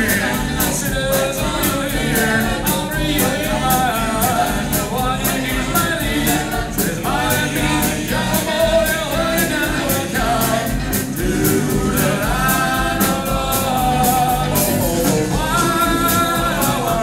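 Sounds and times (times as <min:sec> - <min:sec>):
group singing in close harmony: 0:00.0 - 0:17.0
steady drum beat: 0:00.0 - 0:17.0.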